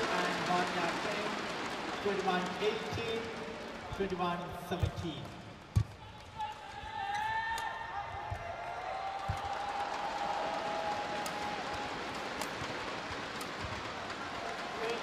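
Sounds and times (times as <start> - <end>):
crowd noise with voices: 0.0 - 15.0.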